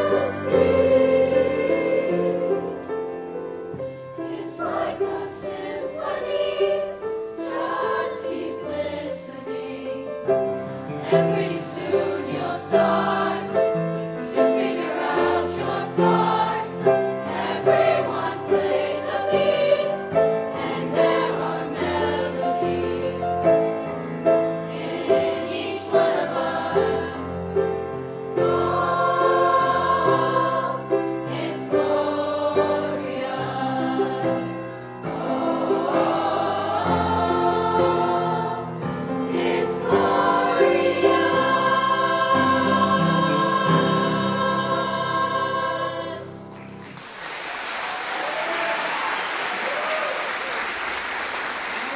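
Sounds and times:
choir singing in harmony: 0.0s - 47.0s
piano accompaniment: 0.0s - 47.0s
audience applause: 46.6s - 51.9s.

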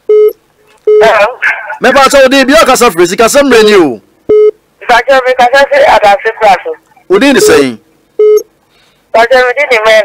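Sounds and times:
person speaking: 4.8s - 7.8s
electronic beep: 7.4s - 7.6s, 8.2s - 8.5s.

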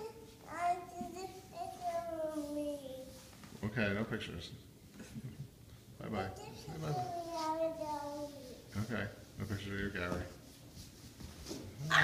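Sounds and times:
child making sing-song sounds: 0.0s - 3.3s, 6.4s - 8.7s.

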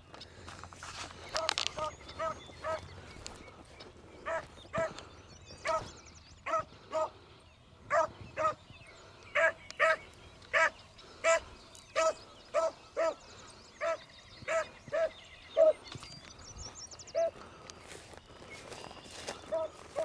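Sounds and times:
beagle baying: 1.8s - 2.8s, 4.2s - 5.0s, 5.6s - 7.2s, 7.9s - 8.6s, 9.4s - 13.2s, 19.5s - 20.0s.

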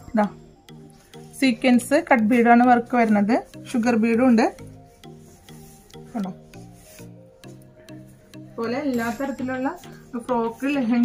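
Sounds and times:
soft background music: 0.0s - 11.0s
beaded fabric rustling: 0.1s - 11.0s.

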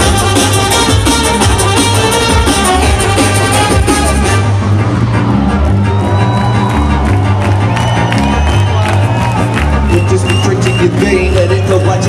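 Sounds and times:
drums: 0.0s - 12.0s
heavy bass line: 0.0s - 12.0s
crowd cheering and whistling: 4.9s - 12.0s.

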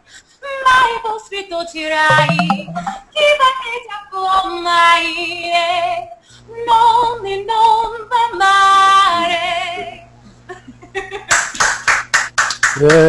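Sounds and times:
woman singing opera: 3.2s - 10.0s.

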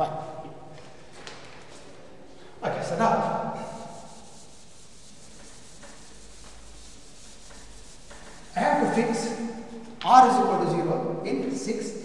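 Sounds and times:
duster wiping chalk off blackboard: 2.8s - 10.0s.

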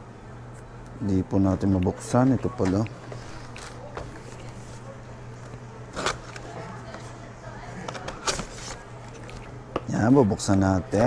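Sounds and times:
low room hum: 0.0s - 11.0s
scissors snipping packaging: 5.9s - 6.6s.

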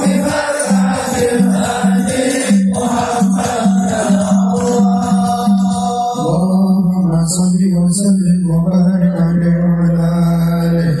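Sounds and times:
men chanting a long note: 0.0s - 6.6s.

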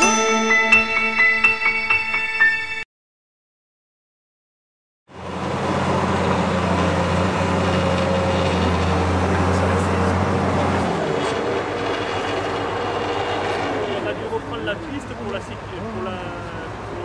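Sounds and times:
diesel engine and winch running: 5.1s - 17.0s.

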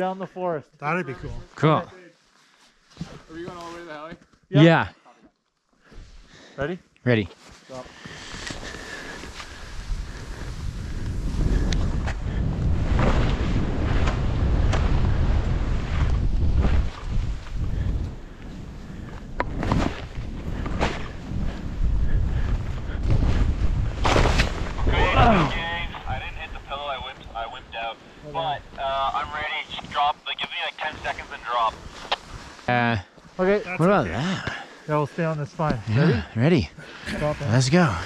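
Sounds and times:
wind rushing over microphone: 9.6s - 27.6s
person calling out: 24.9s - 25.6s.

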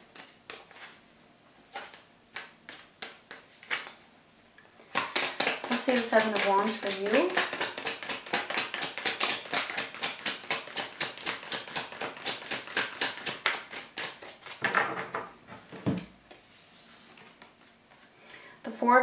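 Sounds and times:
cards shuffling clicks: 4.8s - 14.6s.

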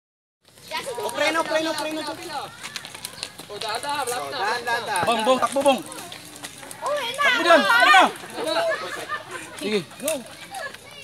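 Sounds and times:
people calling out: 0.7s - 11.0s.

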